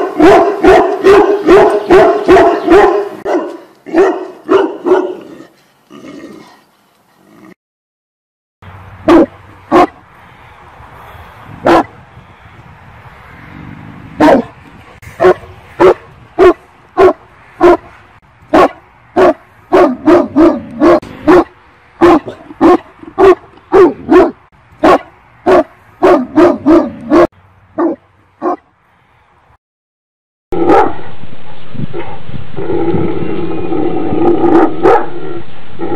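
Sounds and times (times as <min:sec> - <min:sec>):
dog barking: 0:00.0 - 0:05.4, 0:09.1 - 0:10.0, 0:11.6 - 0:11.9, 0:14.2 - 0:14.6, 0:15.2 - 0:17.9, 0:18.5 - 0:28.6, 0:30.6 - 0:31.0, 0:34.5 - 0:35.1.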